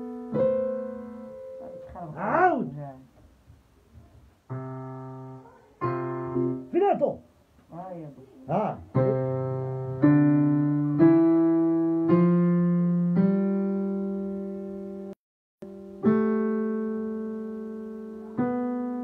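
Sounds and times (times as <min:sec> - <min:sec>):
digital piano chords: 0:00.0 - 0:02.7, 0:03.4 - 0:07.6, 0:08.4 - 0:19.0.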